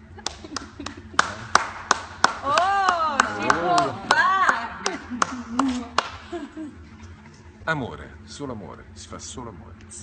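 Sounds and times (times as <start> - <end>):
hand clapping: 0.2 - 6.4.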